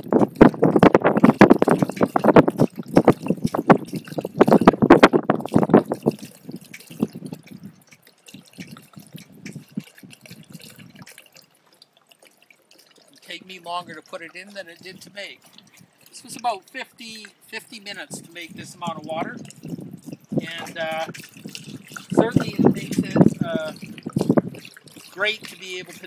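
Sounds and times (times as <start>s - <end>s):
water glugging from jug: 0.0s - 26.0s
water trickling and dripping: 0.0s - 26.0s.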